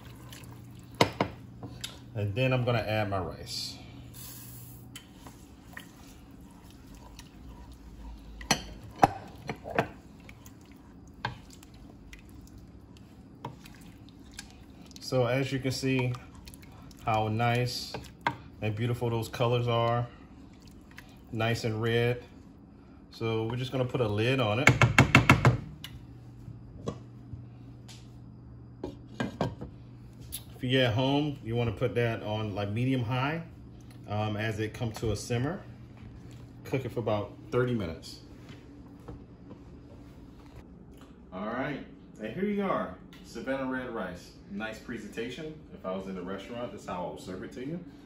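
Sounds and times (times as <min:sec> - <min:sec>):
low steady hum: 0:00.0 - 0:48.0
wooden spoon stirring rice: 0:05.0 - 0:18.4
spoon knocking against pot: 0:24.6 - 0:25.7.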